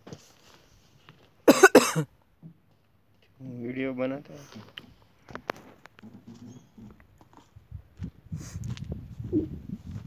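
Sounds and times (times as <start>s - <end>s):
person coughing: 1.5s - 2.1s.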